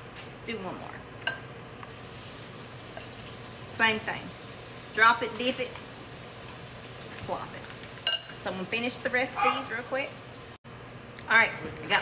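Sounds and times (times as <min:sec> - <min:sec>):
metal spoon clinking glass bowl: 0:08.0 - 0:08.4.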